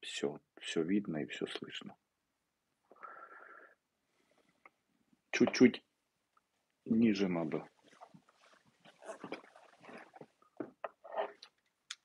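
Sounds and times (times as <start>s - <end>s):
hands rustling: 7.7s - 10.5s.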